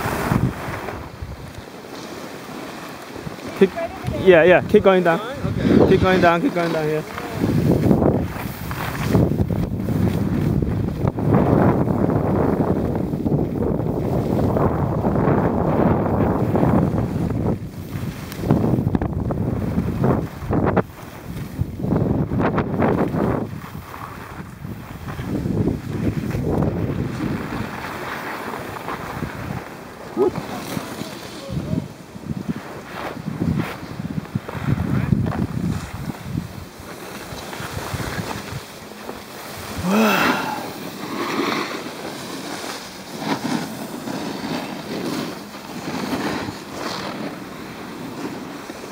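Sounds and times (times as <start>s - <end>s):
wind buffeting microphone: 0.0s - 1.7s, 3.1s - 41.0s
snowboards sliding on snow: 0.0s - 48.9s.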